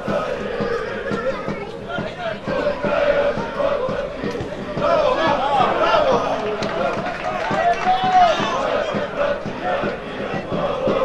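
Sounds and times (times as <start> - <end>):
men shouting and calling out: 0.1 - 11.0.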